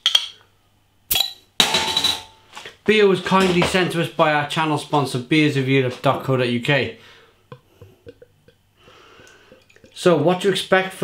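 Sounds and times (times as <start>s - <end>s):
bottle cap prised off: 1.1s - 1.4s.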